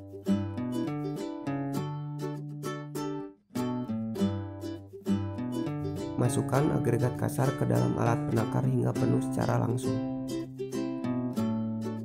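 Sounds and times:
plucked string music: 0:00.0 - 0:12.0.

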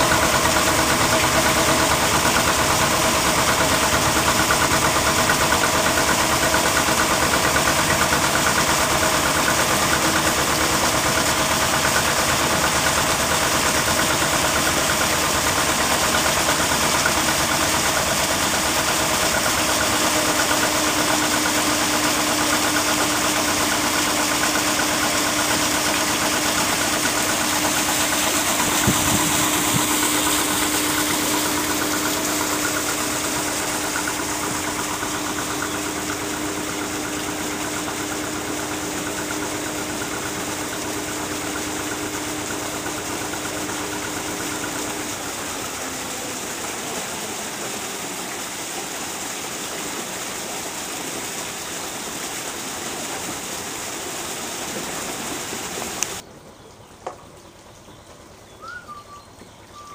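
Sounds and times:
boat engine running: 0:00.0 - 0:59.9
churning canal water: 0:00.0 - 0:59.9.

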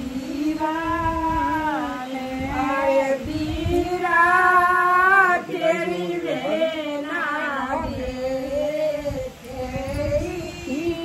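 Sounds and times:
high-pitched voice singing: 0:00.0 - 0:11.0.

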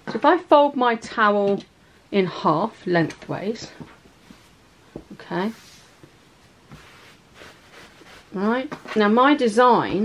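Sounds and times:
towel rustling: 0:03.8 - 0:09.1.

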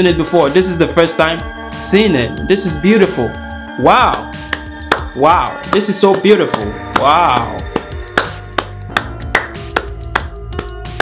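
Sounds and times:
marching music: 0:00.0 - 0:11.0.

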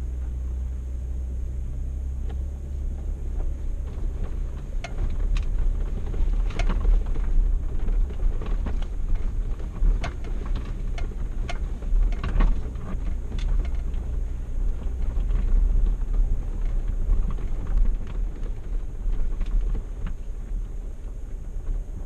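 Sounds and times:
vehicle driving on dirt trail: 0:00.0 - 0:22.0
knocks and rattles over bumps: 0:02.2 - 0:22.0.

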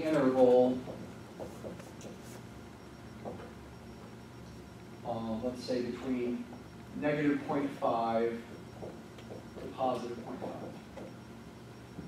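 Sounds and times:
marker writing on whiteboard: 0:00.9 - 0:02.5.

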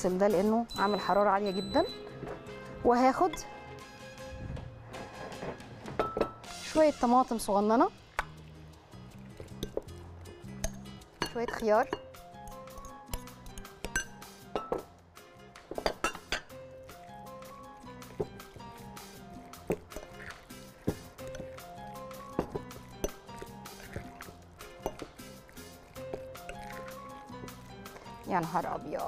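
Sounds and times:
background music: 0:00.0 - 0:29.0
spoon clinking on glass bowl: 0:09.4 - 0:09.9, 0:10.6 - 0:14.9, 0:15.8 - 0:16.6, 0:19.5 - 0:28.9.

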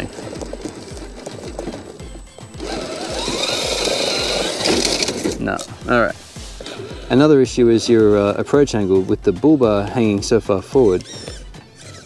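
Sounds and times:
rc car motor whirring: 0:00.0 - 0:05.4, 0:10.8 - 0:12.0
background music with steady beat: 0:00.0 - 0:12.0.

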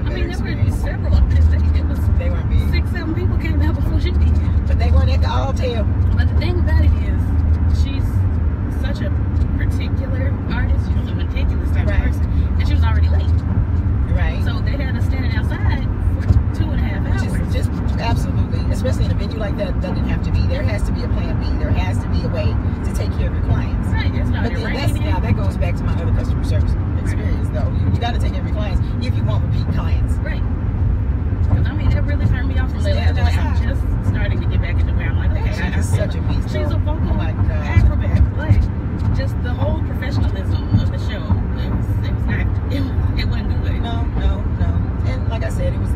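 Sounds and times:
women talking: 0:00.0 - 0:13.4, 0:14.1 - 0:30.5, 0:31.5 - 0:45.9
car cabin road rumble: 0:00.0 - 0:45.9.

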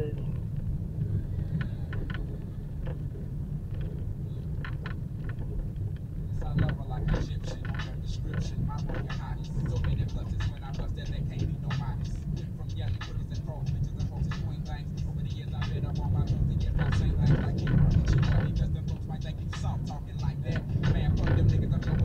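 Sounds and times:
car driving rumble: 0:00.0 - 0:22.0.

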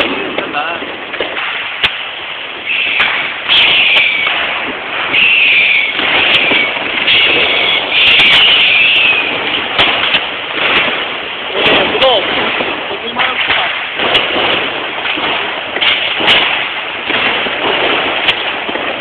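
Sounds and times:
firecracker crackle: 0:00.0 - 0:19.0
firework bangs: 0:00.0 - 0:19.0
firework hissing bursts: 0:00.0 - 0:19.0.

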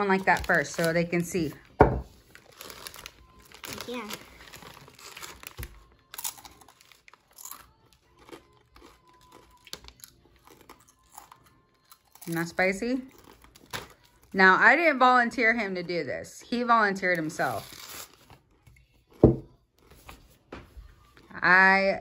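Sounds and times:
chip bag crinkling: 0:02.2 - 0:11.5
chips crunching when chewed: 0:02.4 - 0:12.4.

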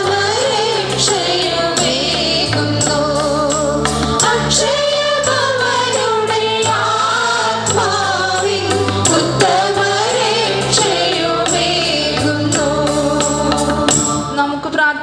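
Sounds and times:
choir singing a hymn: 0:00.0 - 0:14.4
percussion hits: 0:00.0 - 0:14.4
sustained bass notes: 0:00.0 - 0:14.5.

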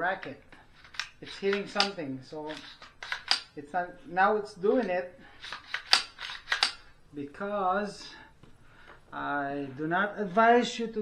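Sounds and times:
pistol bolt racking clicks: 0:00.2 - 0:03.6, 0:05.4 - 0:06.9.

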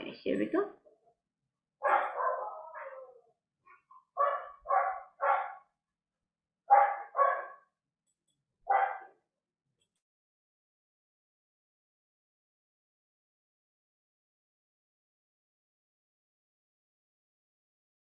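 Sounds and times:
dog barking: 0:01.8 - 0:03.2, 0:04.1 - 0:05.7, 0:06.7 - 0:07.7, 0:08.6 - 0:09.2.

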